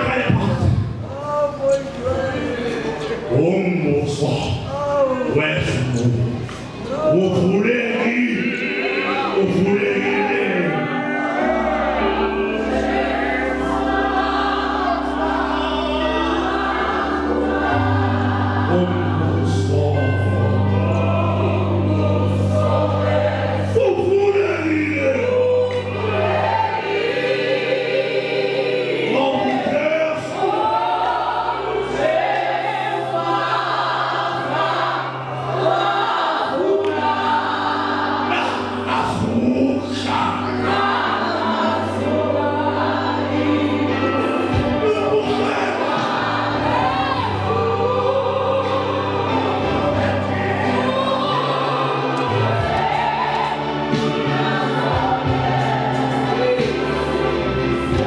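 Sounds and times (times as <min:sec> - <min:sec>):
congregation singing a hymn: 0:00.0 - 0:58.0.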